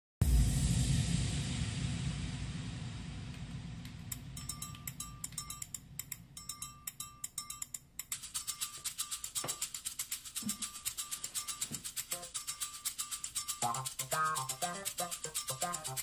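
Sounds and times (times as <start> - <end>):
low rumble: 0.2 - 6.9
dry shaker clicks: 3.3 - 16.0.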